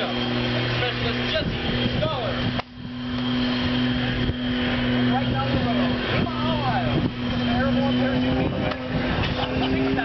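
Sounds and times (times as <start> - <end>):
steady engine hum: 0.0 - 10.0.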